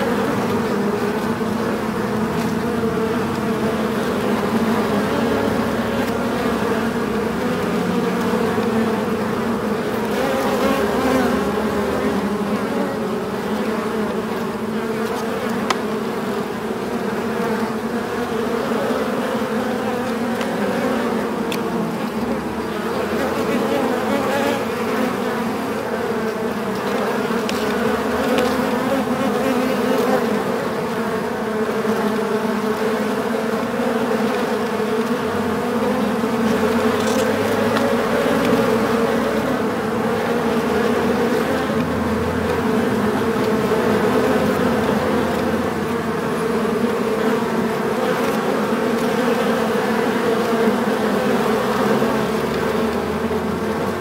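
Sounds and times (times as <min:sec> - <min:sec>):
bees humming in hive: 0:00.0 - 0:54.0.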